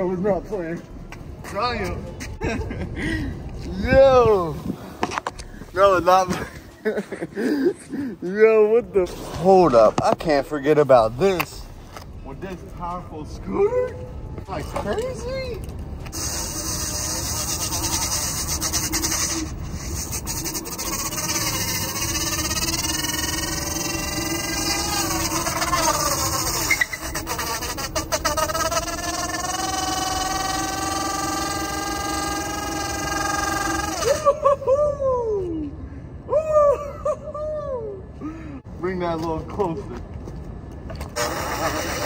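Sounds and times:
tire squeaks: 16.0s - 34.4s, 40.9s - 42.0s
scooter tire spinning whine: 16.1s - 34.4s, 41.1s - 42.0s.

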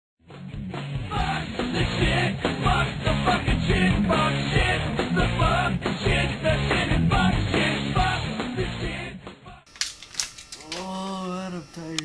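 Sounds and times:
rock music: 0.2s - 9.4s.

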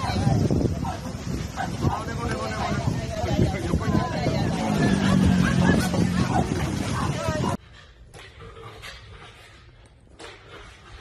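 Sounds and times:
people's voices: 0.0s - 7.6s
noisy outdoor background: 0.0s - 11.0s.

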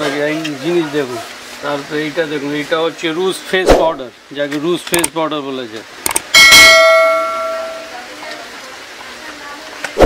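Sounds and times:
bright bell ding: 6.4s - 7.9s.

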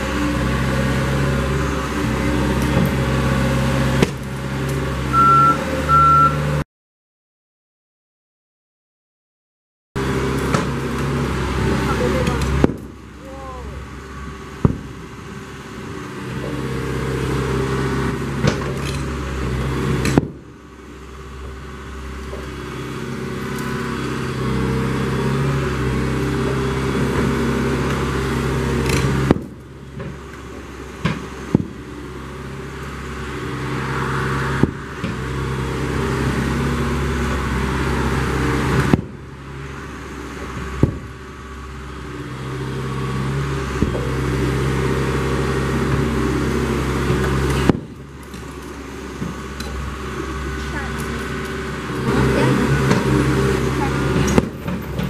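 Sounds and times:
excavator diesel engine under load: 0.0s - 6.6s, 10.0s - 55.0s.

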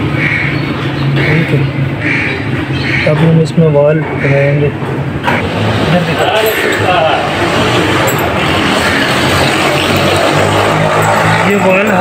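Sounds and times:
engine running: 4.9s - 12.0s.

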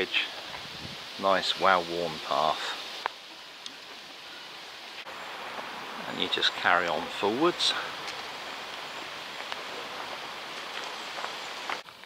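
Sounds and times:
leaves rustling in breeze: 0.0s - 12.0s.

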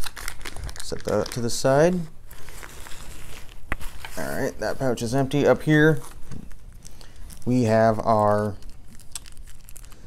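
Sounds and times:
faint rustling of nylon pouch: 0.0s - 10.0s.

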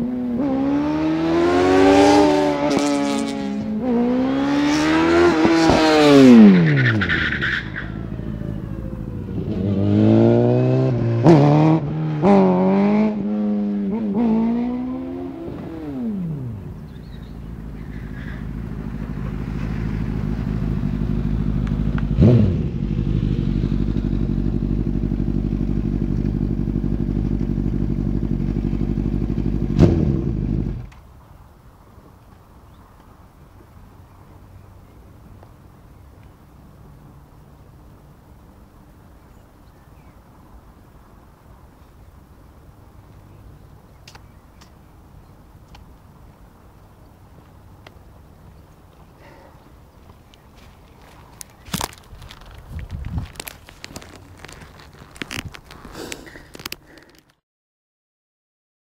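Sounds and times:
motorcycle engine revving: 0.0s - 30.9s.

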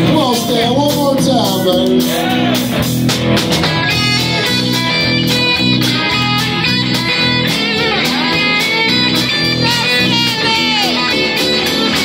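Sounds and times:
bass guitar: 0.0s - 12.0s
electric guitars: 0.0s - 12.0s
steady drum beat: 0.0s - 12.0s.

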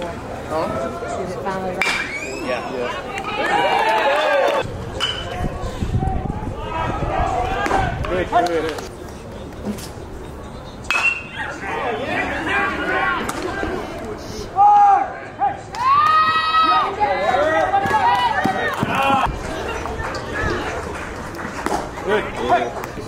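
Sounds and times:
players shouting: 2.0s - 4.7s, 6.0s - 8.6s, 11.0s - 20.9s.

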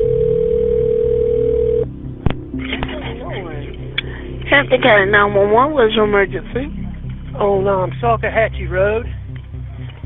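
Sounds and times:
telephone line tone: 0.0s - 1.9s.

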